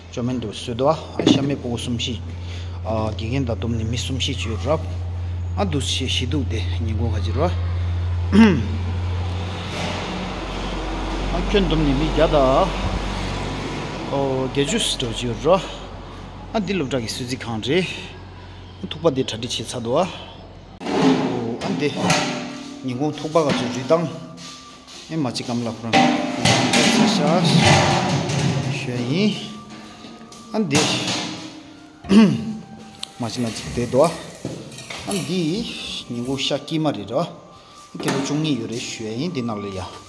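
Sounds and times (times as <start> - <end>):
person vocal syllable: 8.3 - 8.8, 32.0 - 32.6
metal pot lid clattering: 25.9 - 28.8
sharp metallic knock: 26.0 - 28.6.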